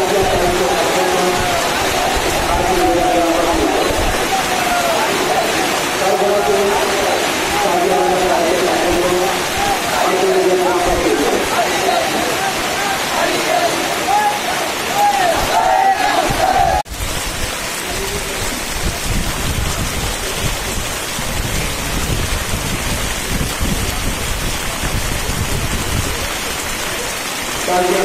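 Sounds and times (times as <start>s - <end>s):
crowd chanting: 0.0s - 16.9s
heavy rain: 0.0s - 28.0s.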